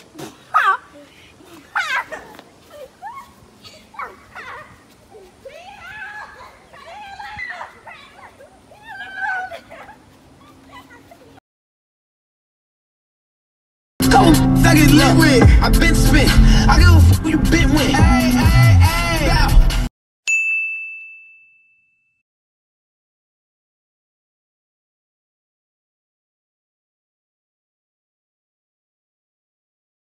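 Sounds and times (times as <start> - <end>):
girls squealing and shrieking: 0.0 - 11.4
bright bell ding: 20.3 - 22.2.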